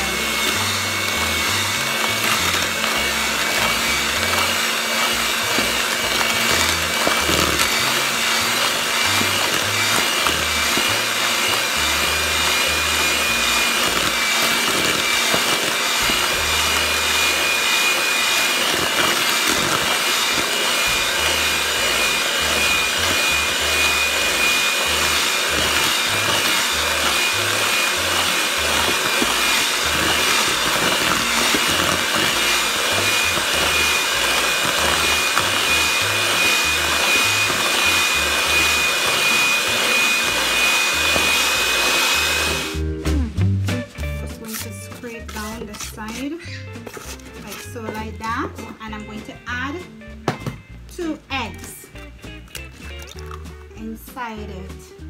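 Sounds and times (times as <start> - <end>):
electric hand mixer whining: 0.0 - 43.4, 44.3 - 55.0.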